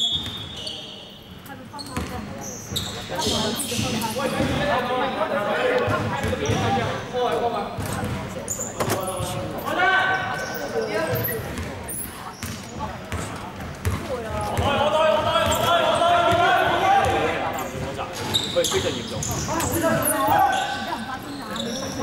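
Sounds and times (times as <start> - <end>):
basketball bouncing on hardwood: 13.8 - 14.7
players calling out: 13.9 - 22.0.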